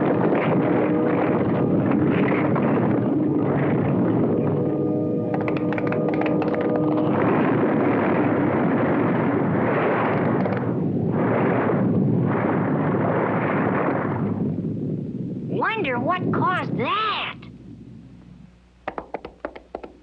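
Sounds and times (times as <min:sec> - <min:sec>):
music with clicks: 0:05.2 - 0:07.1.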